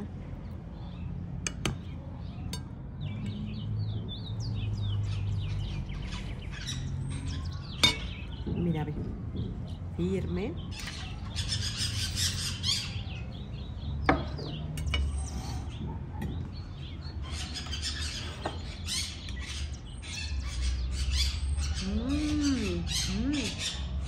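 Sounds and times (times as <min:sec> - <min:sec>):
birds chirping: 0:00.0 - 0:24.0.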